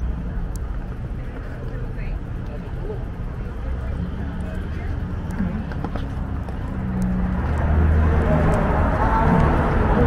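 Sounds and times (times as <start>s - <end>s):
faint voices: 0.0s - 10.0s
low wind rumble: 0.0s - 10.0s
street noise: 0.0s - 10.0s
footsteps on pavement: 0.4s - 1.9s, 5.2s - 8.6s.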